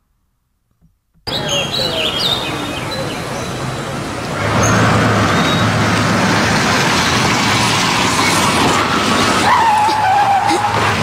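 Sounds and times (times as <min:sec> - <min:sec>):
road noise: 0:01.2 - 0:11.0
car engine humming: 0:01.3 - 0:11.0
tyre squeal: 0:08.2 - 0:10.9.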